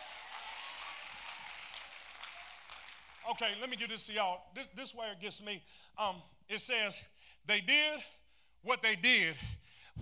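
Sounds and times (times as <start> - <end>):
congregation clapping and cheering: 0.0 - 4.4.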